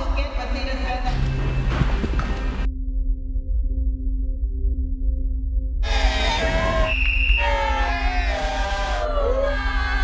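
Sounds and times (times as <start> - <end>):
background music with low drone: 0.0 - 10.0
crowd cheering and shouting: 5.8 - 10.0.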